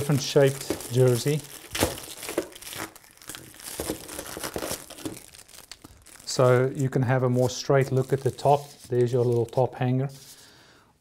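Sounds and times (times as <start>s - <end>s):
plastic packaging crinkling: 0.0s - 9.9s.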